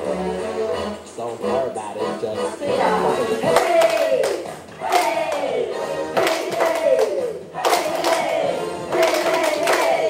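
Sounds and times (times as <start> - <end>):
people clapping: 3.5 - 10.0.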